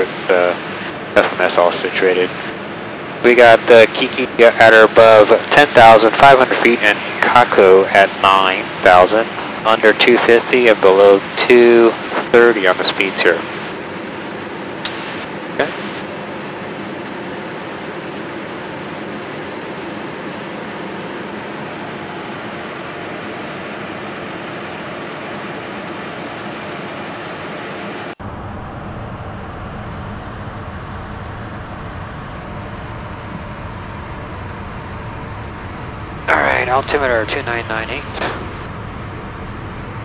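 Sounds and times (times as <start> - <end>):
airflow over airframe: 0.0 - 40.0
jet engines droning: 0.0 - 40.0
deep dull rumble: 28.2 - 40.0.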